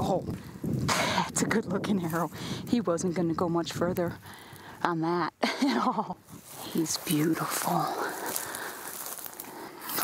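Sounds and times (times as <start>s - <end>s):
footsteps through dry grass: 1.9s - 2.4s, 6.2s - 10.0s.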